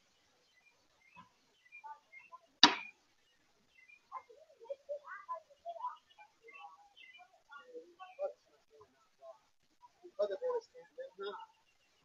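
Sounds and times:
faint bird chirps: 0:00.0 - 0:12.0
sharp knock: 0:02.6 - 0:02.9.

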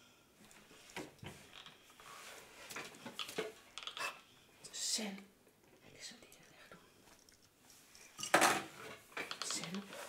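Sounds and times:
soft whispering: 0:04.0 - 0:07.1.

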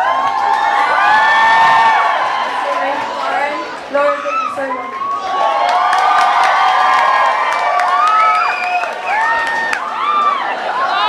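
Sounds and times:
young women screaming: 0:00.0 - 0:02.6, 0:04.1 - 0:11.0
crowd cheering: 0:00.0 - 0:11.0.

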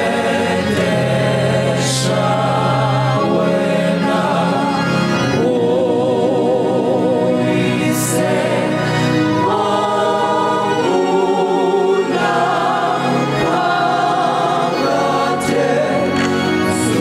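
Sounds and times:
choir singing a hymn: 0:00.0 - 0:17.0
electronic keyboard accompaniment: 0:00.0 - 0:17.0.

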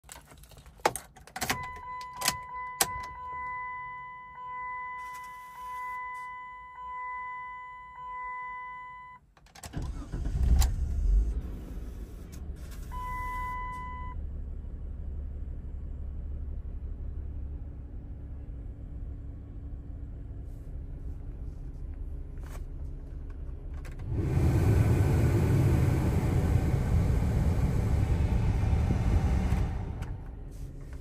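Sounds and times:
keys clicking into ignition: 0:00.0 - 0:03.1
car engine cranking and idling: 0:09.2 - 0:31.0.

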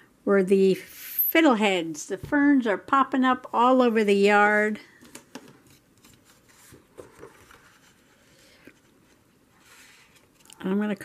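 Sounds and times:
paper handling: 0:05.0 - 0:10.6.

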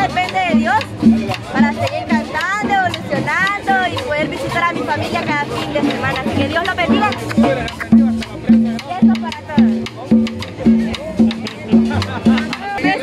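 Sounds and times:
drum kit dance beat: 0:00.0 - 0:13.0
live band dance music: 0:00.0 - 0:13.0.

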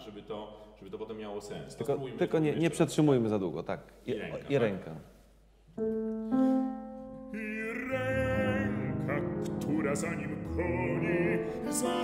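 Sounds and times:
grand piano: 0:05.8 - 0:12.0
bass-baritone singing: 0:07.2 - 0:12.0.

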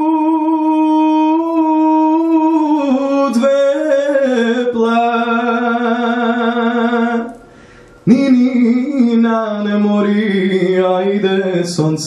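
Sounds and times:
man singing unaccompanied: 0:00.0 - 0:07.4, 0:08.0 - 0:12.0
hissing breath: 0:07.4 - 0:08.0.

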